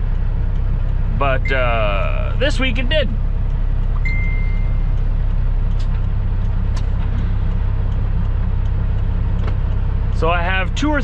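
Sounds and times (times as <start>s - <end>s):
truck diesel engine rumble: 0.0s - 11.0s
high steady tone: 0.8s - 5.6s.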